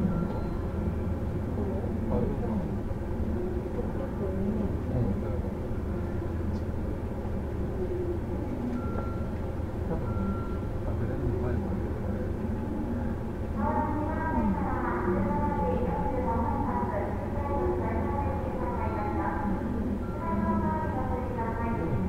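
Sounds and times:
faint passengers' voices: 0:00.0 - 0:22.0
train car low rumble: 0:00.0 - 0:22.0.

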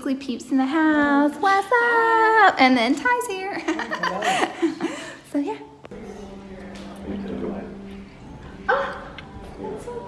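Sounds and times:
dog barking: 0:08.7 - 0:09.1.

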